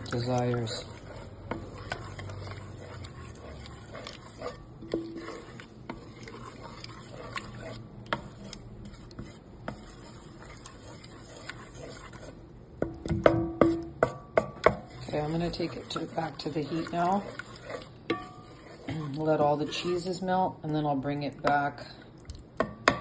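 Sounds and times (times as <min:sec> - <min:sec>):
spoon stirring sauce in pot: 0:00.0 - 0:23.0
utensil tapping against pot: 0:12.8 - 0:14.9, 0:18.1 - 0:18.6, 0:22.6 - 0:23.0.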